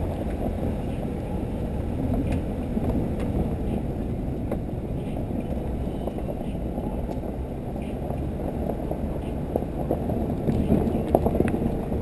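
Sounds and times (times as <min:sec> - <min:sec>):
muffled wind: 0:00.0 - 0:12.0
road rumble: 0:00.0 - 0:12.0.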